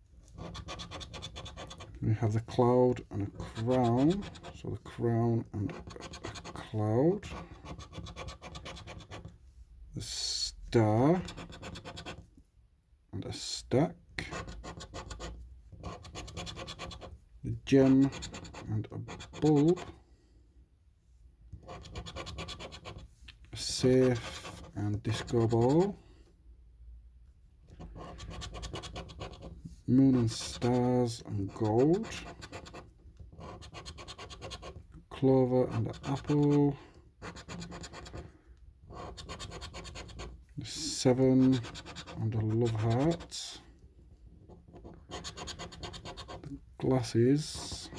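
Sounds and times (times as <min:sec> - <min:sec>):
coin scratching scratch card: 0:00.3 - 0:02.0, 0:03.2 - 0:04.6, 0:05.6 - 0:09.3, 0:11.1 - 0:12.2, 0:14.2 - 0:20.0, 0:21.6 - 0:25.9, 0:27.8 - 0:34.8, 0:35.6 - 0:38.3, 0:38.9 - 0:43.6, 0:44.5 - 0:46.5.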